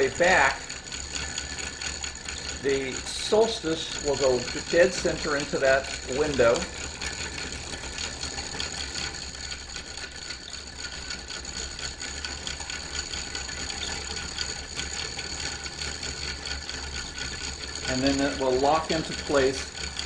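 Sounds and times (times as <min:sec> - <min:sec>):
wooden gears clicking: 0:00.0 - 0:20.0.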